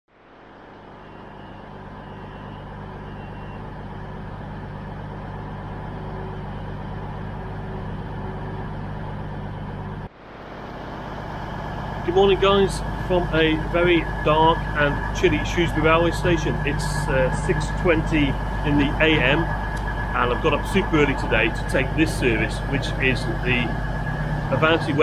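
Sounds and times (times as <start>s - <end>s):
diesel engines idling: 0.3s - 25.0s.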